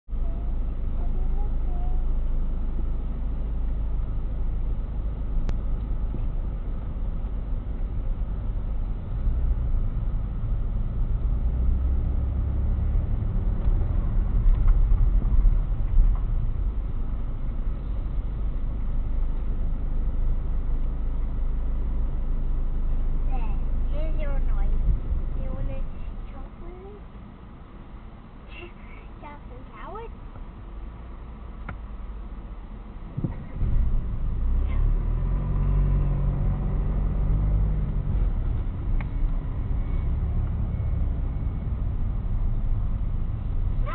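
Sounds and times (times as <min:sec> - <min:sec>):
car engine and tyres rumbling: 0:00.0 - 0:43.9.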